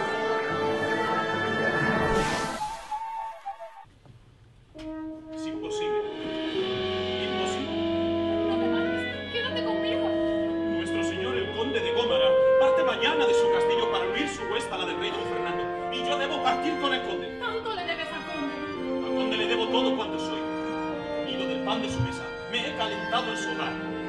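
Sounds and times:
small orchestra with strings: 4.8 - 24.0.

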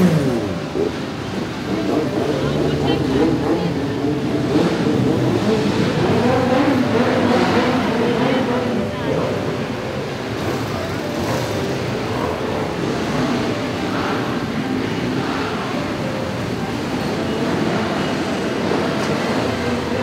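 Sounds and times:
motorcycles riding slowly past: 0.0 - 20.0.

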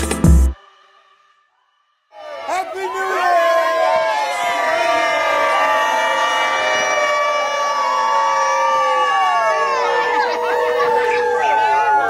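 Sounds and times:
long drawn-out shouts: 2.1 - 12.0
crowd cheering and whooping: 2.2 - 12.0.

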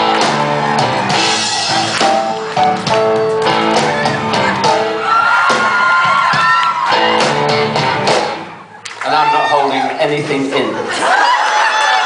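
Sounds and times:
live rock band with electric guitar: 0.0 - 9.0.

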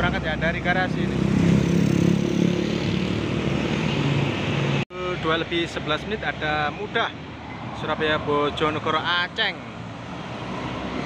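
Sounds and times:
motor scooters passing: 0.9 - 4.8.

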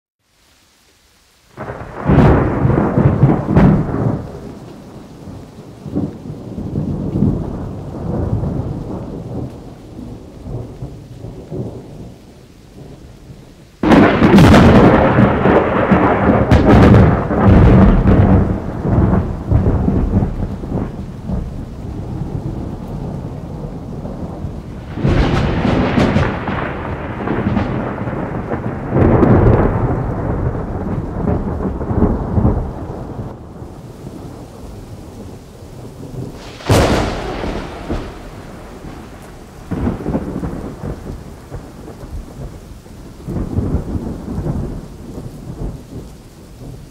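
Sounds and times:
steady rain: 0.2 - 46.9
loud thunderclap: 1.6 - 4.6, 5.2 - 12.1, 13.8 - 46.0
thunder rumbling: 1.6 - 46.9.

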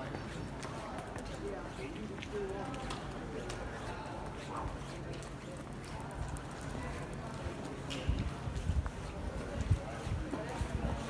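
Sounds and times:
voices of passers-by: 0.0 - 11.0.

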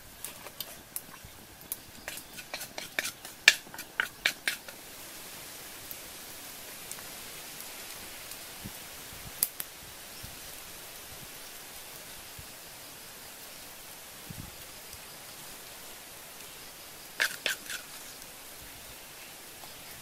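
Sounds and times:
squid sizzling on hot rock: 0.0 - 20.0.

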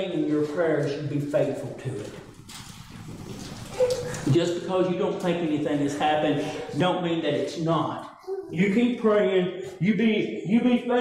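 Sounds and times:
man preaching: 0.0 - 2.3, 4.2 - 11.0
low room noise: 0.0 - 11.0.

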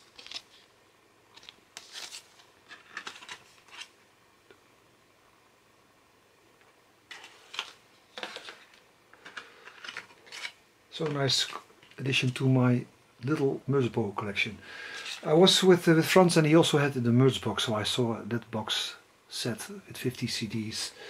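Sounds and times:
card sleeves and paper rustling: 0.0 - 0.7, 1.3 - 4.0, 7.1 - 12.5.

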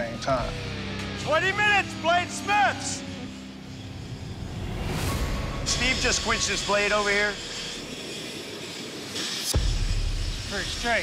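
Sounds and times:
hot steel hissing in water: 3.2 - 11.0.

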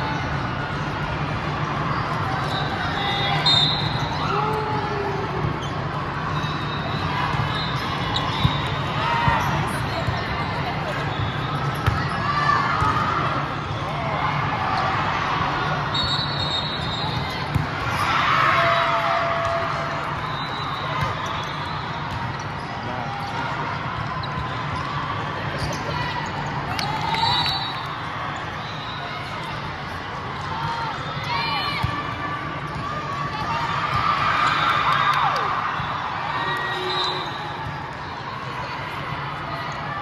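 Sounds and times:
shoe squeaks on court: 5.6 - 9.6.

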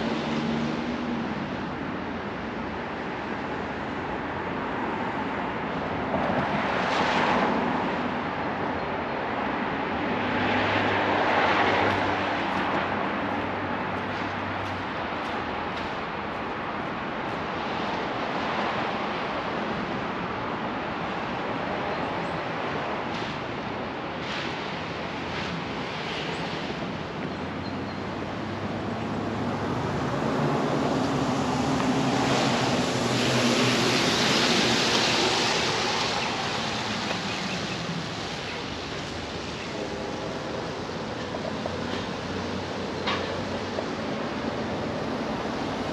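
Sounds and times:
street traffic tyre noise: 0.0 - 45.9
vehicles passing: 0.0 - 45.9.

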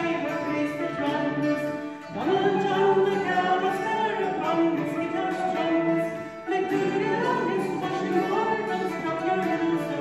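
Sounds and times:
fiddle: 0.0 - 10.0
folk group singing together: 0.0 - 10.0.

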